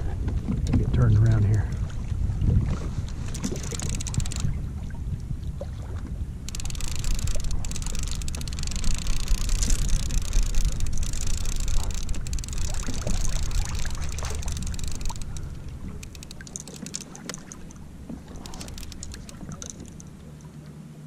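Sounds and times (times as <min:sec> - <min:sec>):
wind rumbling on microphone: 0:00.0 - 0:20.3
water splashing against kayak hull: 0:00.0 - 0:20.6.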